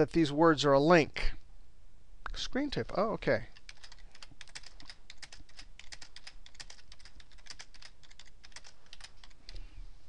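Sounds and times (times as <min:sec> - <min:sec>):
typing on computer keyboard: 0:03.6 - 0:09.6.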